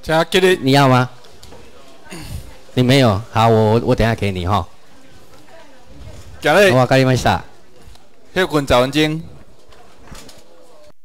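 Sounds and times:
man speaking: 0.0s - 1.2s, 2.1s - 4.8s, 6.4s - 7.6s, 8.3s - 9.4s
room noise: 0.0s - 11.0s.

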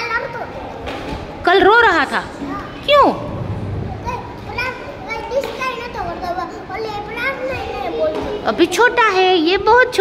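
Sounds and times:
children's voices: 0.0s - 1.3s, 2.1s - 8.7s
young child talking: 3.9s - 8.4s.

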